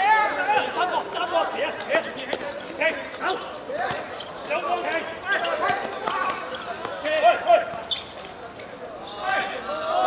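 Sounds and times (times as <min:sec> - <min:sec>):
players shouting: 0:09.0 - 0:10.0.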